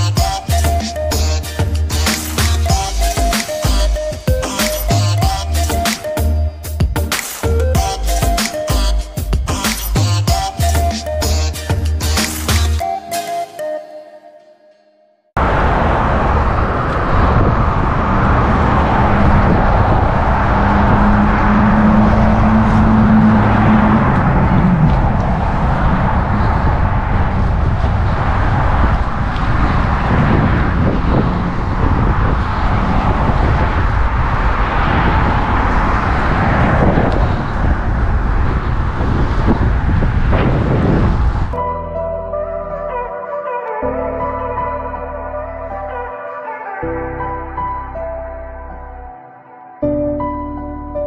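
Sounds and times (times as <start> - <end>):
wind on microphone: 15.4 - 41.6.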